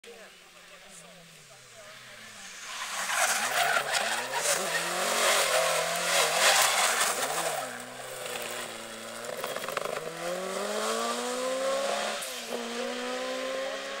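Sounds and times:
rally car engine revving: 0:01.9 - 0:14.0
tyre squeal and skidding: 0:02.4 - 0:10.1.

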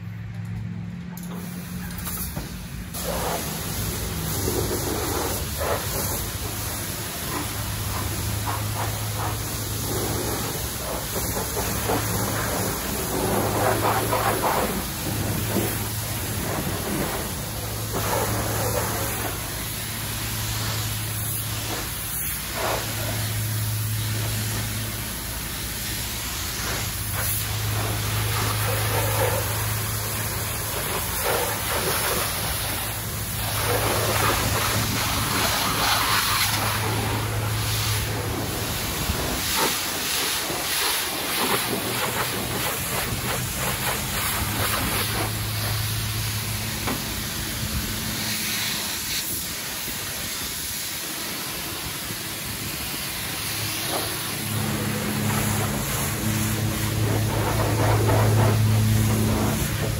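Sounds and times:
pressure washer spraying water: 0:01.2 - 0:59.9
low hum: 0:53.8 - 0:59.9.

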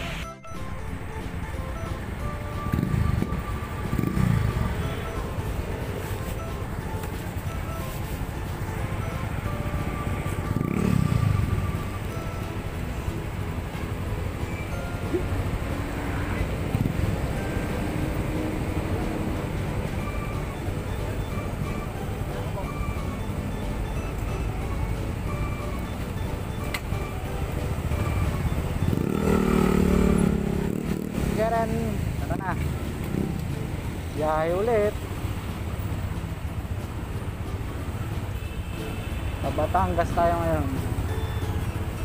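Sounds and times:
traffic rumble: 0:00.0 - 0:42.0
motorcycle engine: 0:01.5 - 0:35.7.

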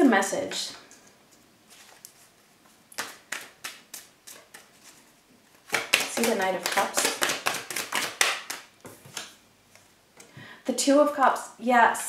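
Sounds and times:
cards being shuffled: 0:02.9 - 0:09.9.

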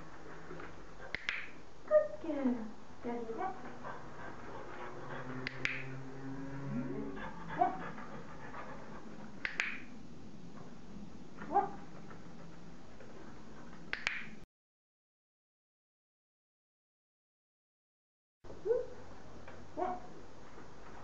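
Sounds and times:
short rising dog sounds: 0:04.0 - 0:08.3
dog-training clicker clicks: 0:09.4 - 0:09.9.

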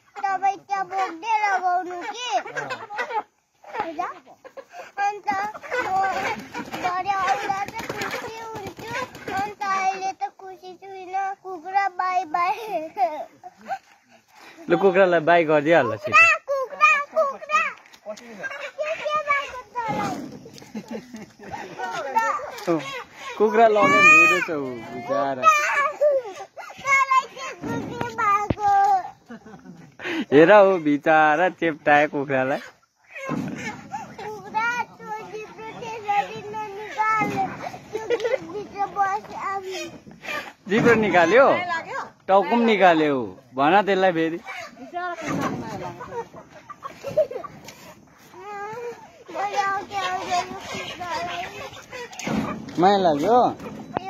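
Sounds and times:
small boy talking: 0:00.0 - 0:13.8, 0:15.8 - 0:20.4, 0:21.6 - 0:29.2, 0:33.2 - 0:42.7, 0:44.4 - 0:46.2, 0:48.3 - 0:52.6.

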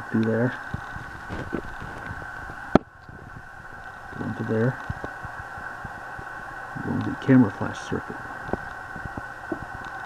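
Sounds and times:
steady high-pitched hum: 0:00.0 - 0:10.0.

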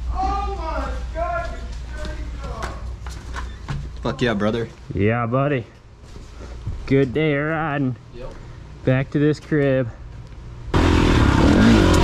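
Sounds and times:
steady low hum: 0:00.0 - 0:12.0
people talking: 0:00.1 - 0:02.8.

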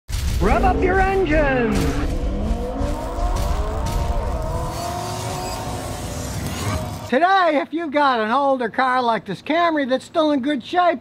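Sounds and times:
car engine revving: 0:00.3 - 0:07.1.

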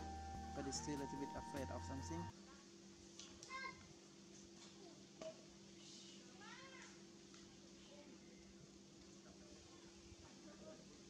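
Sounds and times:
faint steady hum: 0:00.0 - 0:02.3.

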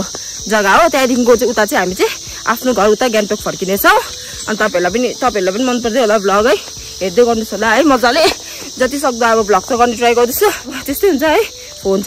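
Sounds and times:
high-pitched insect chorus: 0:00.0 - 0:12.0
woman talking: 0:00.0 - 0:12.0.

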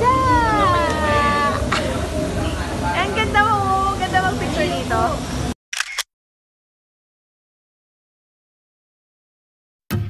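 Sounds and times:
people's voices: 0:00.0 - 0:05.4
camera shutter click: 0:05.7 - 0:06.1.

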